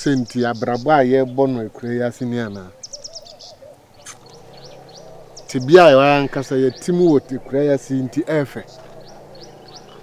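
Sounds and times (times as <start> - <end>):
high bird chirps: 0.0 - 10.0
low wavering bird call: 2.7 - 6.8.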